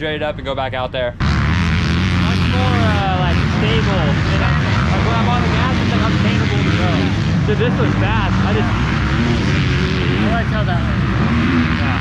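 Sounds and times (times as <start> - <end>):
voices talking: 1.9 - 12.0.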